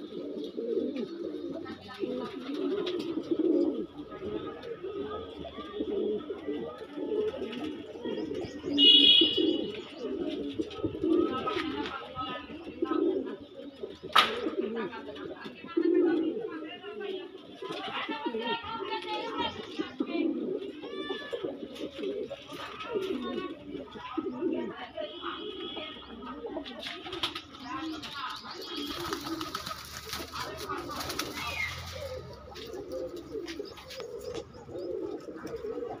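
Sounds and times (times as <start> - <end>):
pigeons cooing: 0.0 - 36.0.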